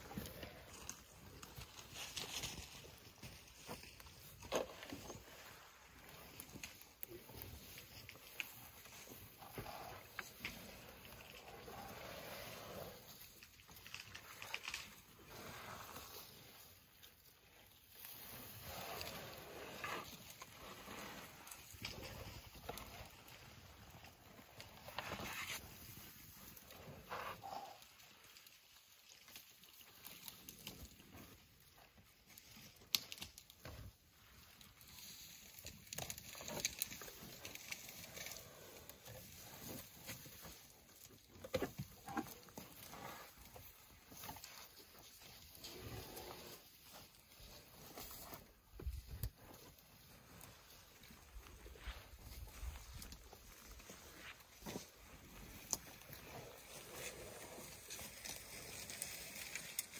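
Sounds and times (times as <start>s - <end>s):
elephants chewing bark: 0.0s - 31.5s, 32.3s - 59.9s.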